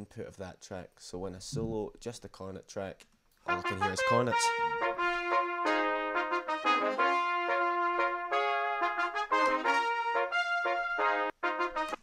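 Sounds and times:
cornets playing in harmony: 3.5s - 11.8s.

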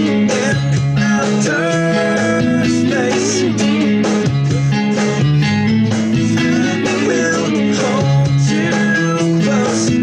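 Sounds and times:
person singing: 0.0s - 5.2s, 6.2s - 10.0s
electric guitar strummed: 0.0s - 10.0s
rock band track: 0.0s - 10.0s.

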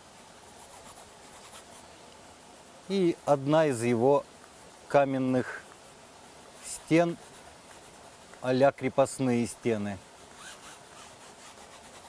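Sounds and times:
brush scrubbing paint on canvas: 0.0s - 12.0s.

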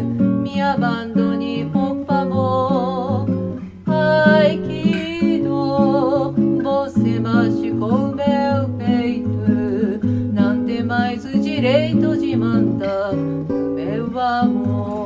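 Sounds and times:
acoustic guitar: 0.0s - 15.0s
woman singing with vibrato: 0.0s - 15.0s.

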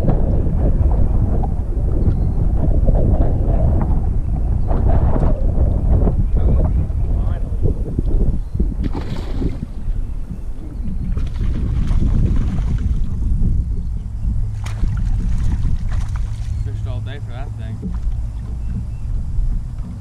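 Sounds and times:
wind noise on microphone: 0.0s - 20.0s.

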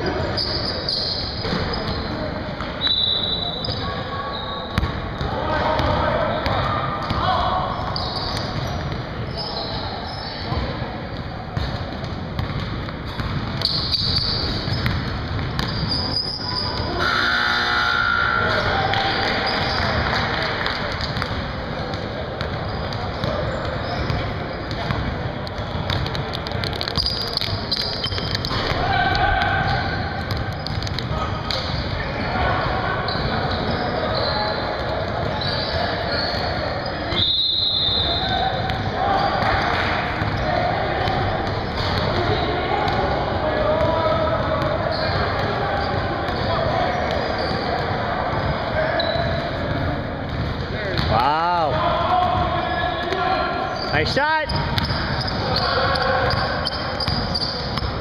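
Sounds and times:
people shouting and chattering: 0.0s - 58.0s
basketballs bouncing on hardwood floor: 4.8s - 6.0s, 11.6s - 15.9s, 20.9s - 32.0s, 54.5s - 58.0s.

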